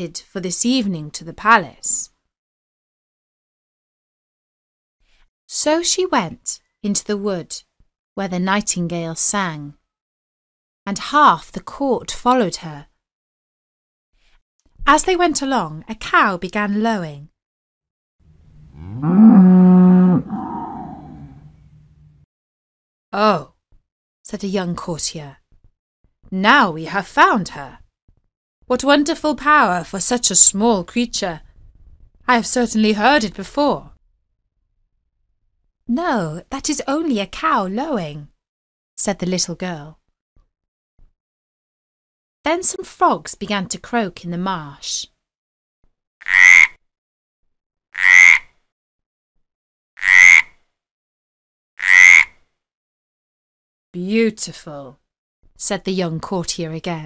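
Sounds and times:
cow mooing: 18.5 - 21.9
frog croaking: 46.2 - 46.8, 48.0 - 48.5, 50.0 - 50.5, 51.8 - 52.4.

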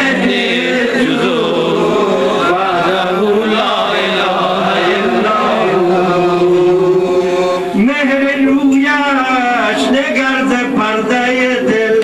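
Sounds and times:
man chanting devotional poetry: 0.0 - 12.0.

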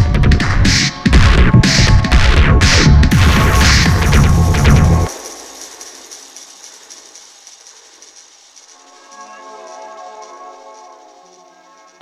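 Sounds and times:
electronic music: 0.0 - 12.0
faint ticking: 5.0 - 12.0.

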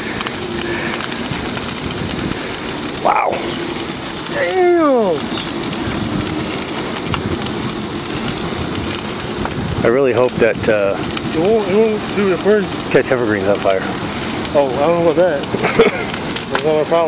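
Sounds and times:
bonfire crackling: 0.0 - 17.0
person calling out: 3.0 - 3.6, 4.3 - 5.3.

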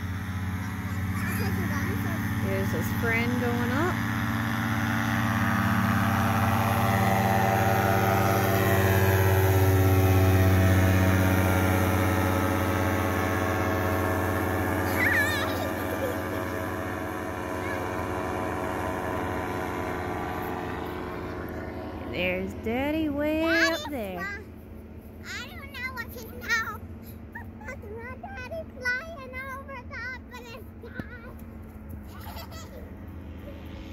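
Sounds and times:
paramotor engine droning: 0.0 - 33.9.

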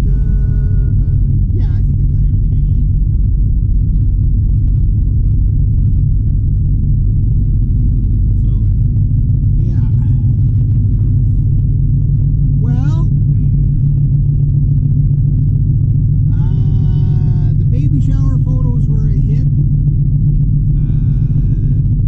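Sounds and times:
road and engine rumble in car: 0.0 - 22.0
person speaking: 12.6 - 13.7, 16.3 - 19.5, 20.8 - 21.8.

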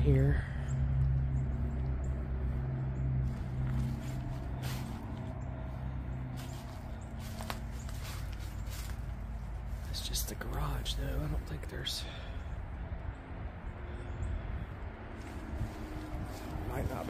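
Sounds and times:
steady low rumble: 0.0 - 17.0
footsteps crunching on dead leaves: 3.2 - 11.2, 15.2 - 17.0.

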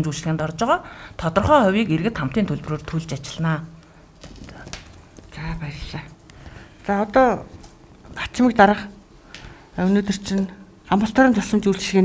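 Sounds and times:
person speaking: 4.5 - 6.2, 6.8 - 9.0, 9.7 - 12.0.

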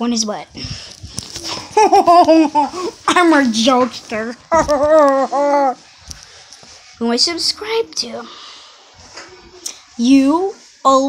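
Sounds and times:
phone rustling: 0.9 - 5.2
child laughing hard: 1.5 - 3.0.

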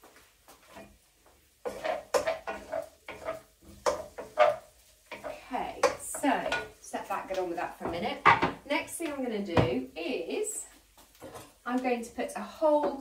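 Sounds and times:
utensil scraping and knocking pan: 1.6 - 8.6, 11.2 - 11.6.

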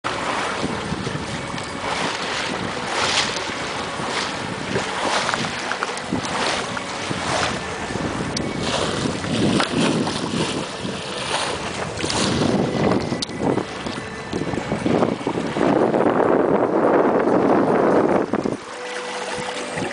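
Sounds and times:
water washing along hull: 0.0 - 19.9
wind buffeting microphone: 0.1 - 19.9.

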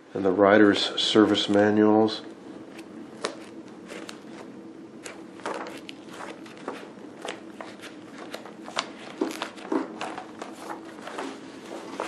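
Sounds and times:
paper pages flipping: 2.7 - 12.0.

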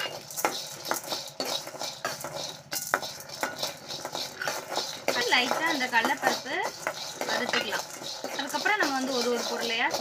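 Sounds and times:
dry beans rattling in metal pan: 0.0 - 10.0
ladle scraping and knocking pan: 0.0 - 10.0.

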